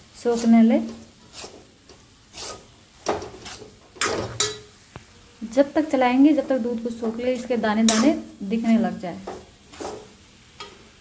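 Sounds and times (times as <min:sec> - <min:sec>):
metal spatula scraping metal pan: 0:00.2 - 0:04.7, 0:06.3 - 0:08.3, 0:09.3 - 0:10.1.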